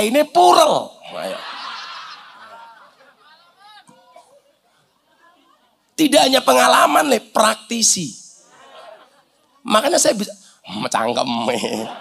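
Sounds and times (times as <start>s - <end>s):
audience laughter: 1.1s - 3.5s, 8.4s - 9.5s, 11.4s - 12.0s.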